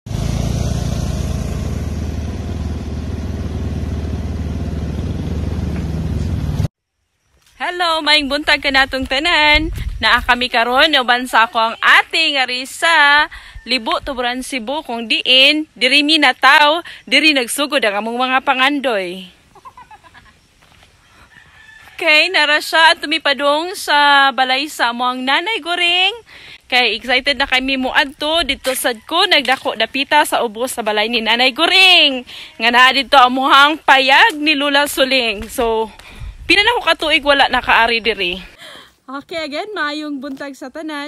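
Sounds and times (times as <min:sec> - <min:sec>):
road and wind noise: 0:00.1 - 0:06.7, 0:08.1 - 0:15.8, 0:25.5 - 0:38.7
small motorcycle engine running: 0:00.1 - 0:06.7
faint rooster crowing: 0:21.0 - 0:23.3, 0:28.4 - 0:29.4.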